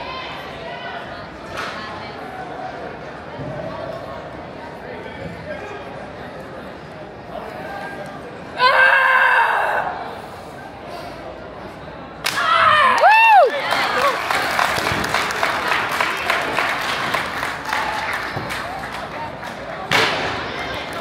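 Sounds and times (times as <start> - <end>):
people clapping: 12.2 - 21.0.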